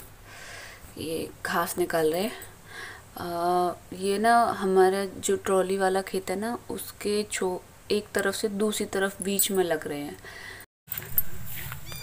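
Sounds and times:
high-pitched animal call: 11.5 - 12.0.

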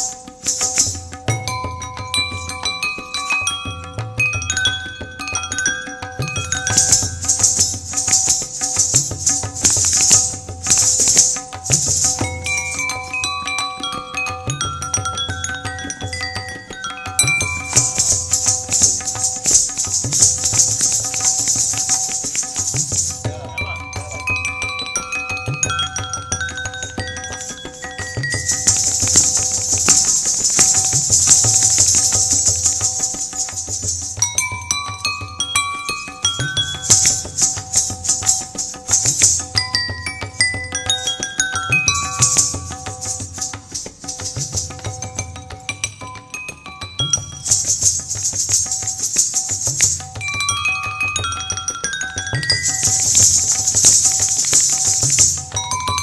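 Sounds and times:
ankle bells jingling: 0.0 - 56.0
tabla pulse: 0.0 - 56.0
rapid footwork: 6.7 - 12.4, 17.7 - 23.3, 28.3 - 34.2.

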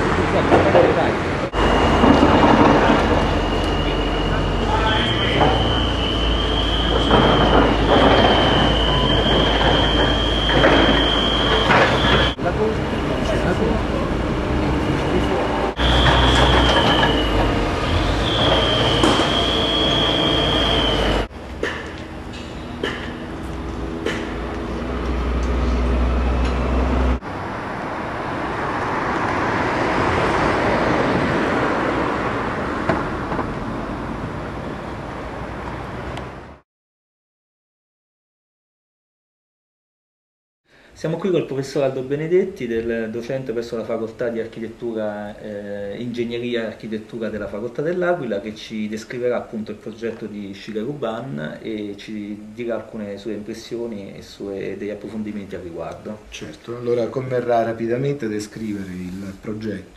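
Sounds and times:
even rushing noise: 0.0 - 21.4
machinery rumble: 0.0 - 36.6
vehicle engine drone: 0.0 - 36.6
wind: 0.0 - 36.6
high-pitched whine: 0.9 - 27.6.

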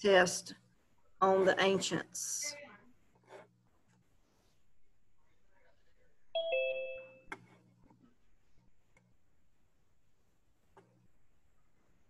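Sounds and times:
two-note electronic chime: 6.4 - 7.2.

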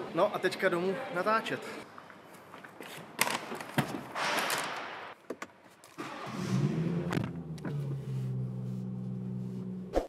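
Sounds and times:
car engine starting and idling: 6.0 - 9.9.

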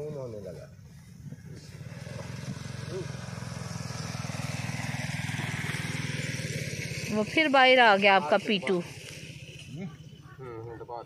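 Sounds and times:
engine low putter: 0.3 - 10.9.

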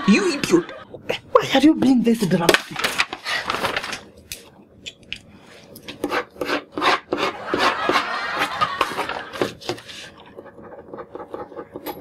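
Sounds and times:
ballpoint pen scribbling on paper: 6.0 - 12.0.

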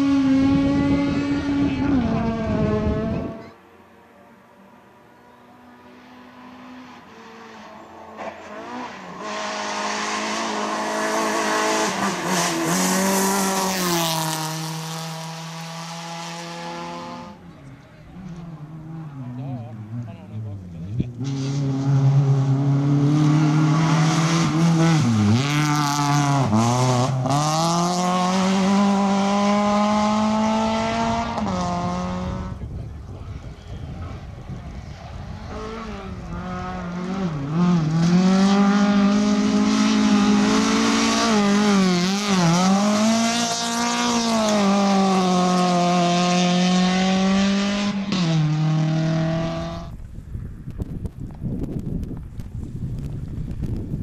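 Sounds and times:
rally car engine revving: 0.0 - 3.6, 5.2 - 50.0
outdoor background noise: 0.0 - 54.0.

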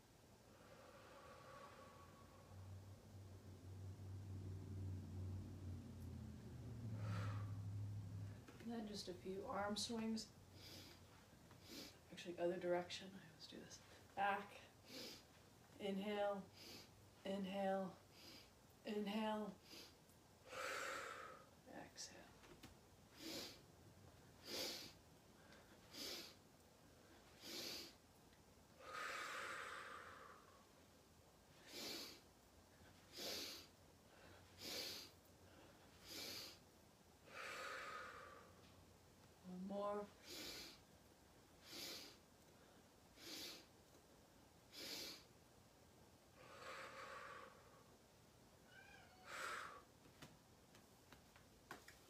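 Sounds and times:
person breathing slowly: 0.5 - 2.8, 6.8 - 8.0, 28.8 - 30.7, 37.2 - 38.8, 46.4 - 47.9
cat meowing: 48.7 - 49.3.

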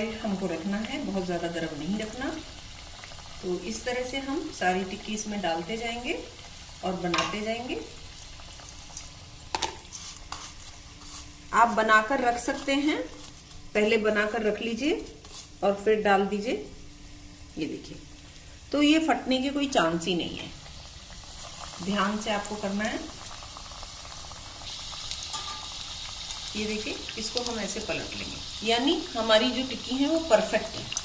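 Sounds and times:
food deep-frying in oil: 0.0 - 31.0.

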